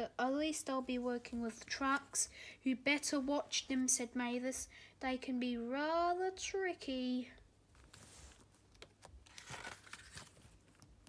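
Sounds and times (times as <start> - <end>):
book page turning: 7.7 - 11.0.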